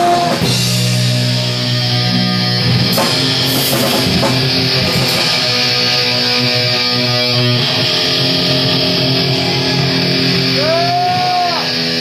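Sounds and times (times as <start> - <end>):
bass guitar: 0.0 - 12.0
distorted electric guitar: 0.0 - 12.0
punk band playing live: 0.0 - 12.0.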